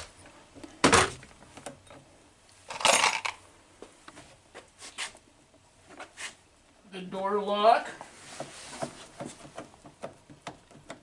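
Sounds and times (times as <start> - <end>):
small metal parts clinking: 2.7 - 3.4.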